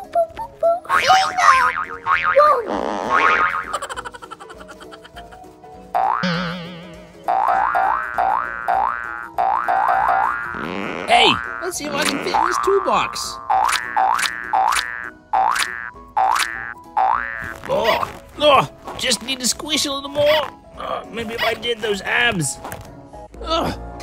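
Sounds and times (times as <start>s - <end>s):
quick rising boings: 6.0s - 10.6s
cartoon warbling wobble: 6.2s - 7.9s.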